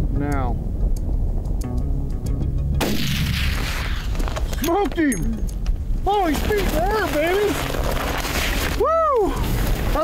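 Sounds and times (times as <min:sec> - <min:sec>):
wind rumble on microphone: 0:00.0 - 0:10.0
rifle shot: 0:02.8 - 0:04.4.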